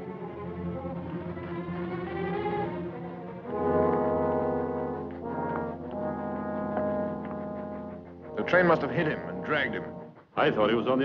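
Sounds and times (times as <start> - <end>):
orchestral brass chords: 2.6 - 11.0.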